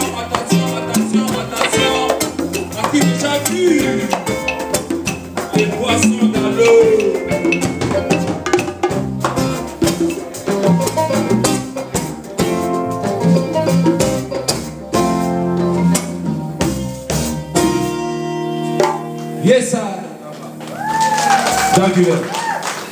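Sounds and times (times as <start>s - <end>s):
electric bass: 0.0s - 22.0s
drum kit: 0.0s - 22.2s
guitars: 0.0s - 22.9s.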